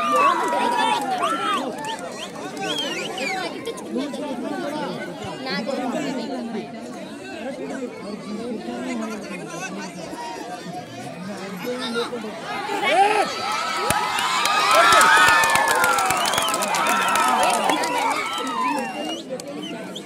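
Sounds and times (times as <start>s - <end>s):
crowd chattering and calling out: 0.0s - 20.0s.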